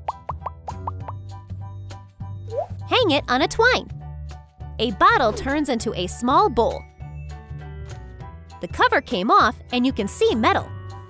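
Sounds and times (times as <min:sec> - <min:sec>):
cartoon pop sound effects: 0:00.0 - 0:01.2
background music with bass: 0:00.0 - 0:08.6.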